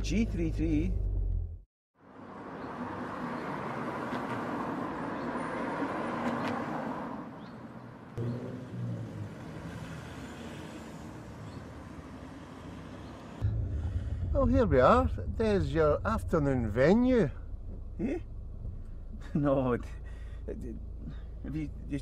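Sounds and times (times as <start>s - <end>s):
passing cars: 2.0s - 22.0s
car interior rumble: 13.4s - 22.0s.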